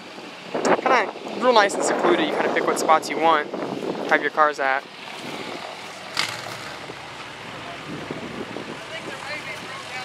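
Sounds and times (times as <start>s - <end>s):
pickup truck engine at low speed: 3.4s - 10.0s.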